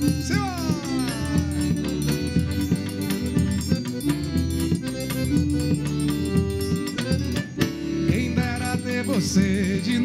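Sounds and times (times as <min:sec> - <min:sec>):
accordion melody: 0:00.0 - 0:10.0
steady drum beat: 0:00.0 - 0:10.0.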